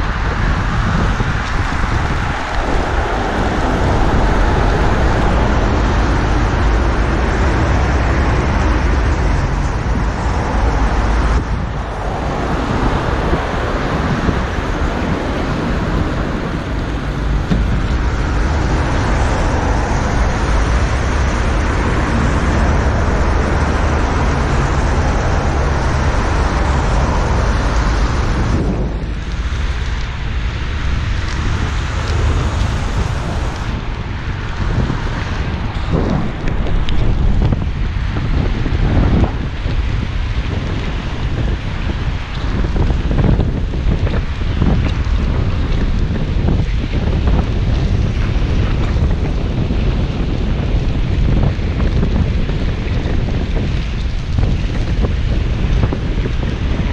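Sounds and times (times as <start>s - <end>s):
car traffic: 0.0s - 56.9s
wind rushing over microphone: 0.0s - 56.9s.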